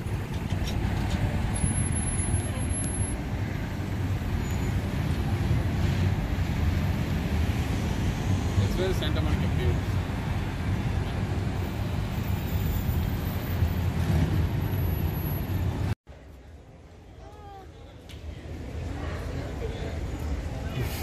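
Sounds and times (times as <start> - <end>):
busy road traffic rumble: 0.0 - 21.0.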